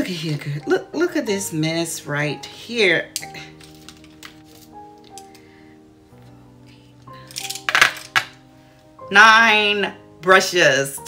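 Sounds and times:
soft background music: 0:00.0 - 0:11.0
makeup brush handles clattering: 0:03.1 - 0:05.4, 0:07.2 - 0:08.4.

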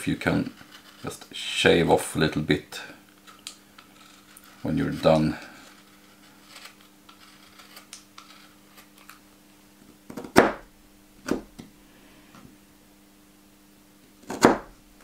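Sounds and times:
gouge cutting through leather: 0:05.6 - 0:08.6.

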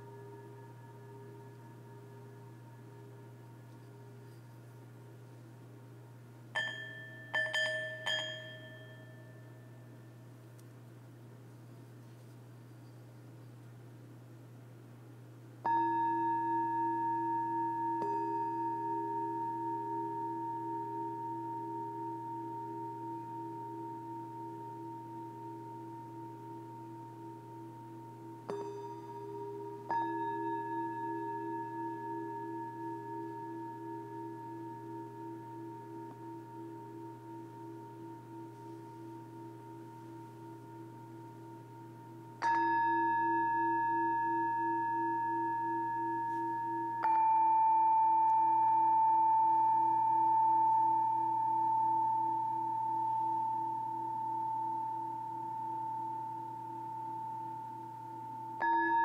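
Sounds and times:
singing bowls struck with mallet: 0:00.0 - 0:04.7, 0:06.6 - 0:10.1, 0:15.6 - 0:59.0.

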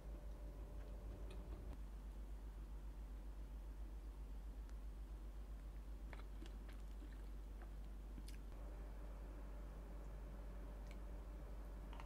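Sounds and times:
low steady hum: 0:00.0 - 0:12.0
soft squishing of food: 0:05.5 - 0:08.6.

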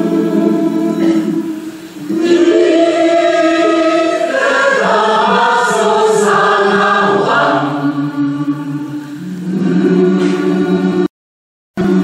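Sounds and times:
choir singing held chords: 0:00.0 - 0:11.1, 0:11.8 - 0:12.0.

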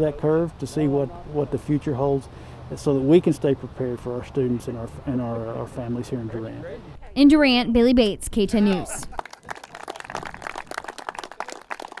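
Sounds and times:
people applauding: 0:09.0 - 0:12.0.

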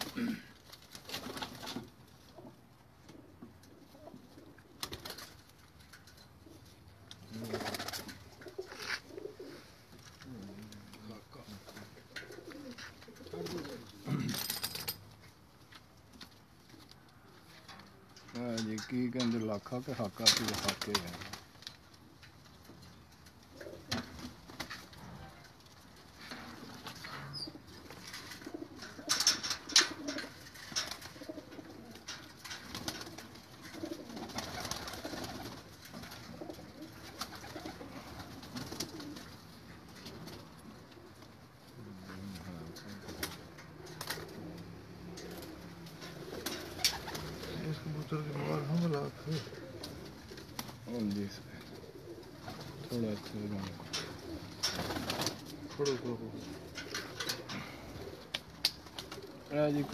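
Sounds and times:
pigeons cooing: 0:00.0 - 0:14.8, 0:15.4 - 0:59.9
rustling: 0:03.1 - 0:59.9.

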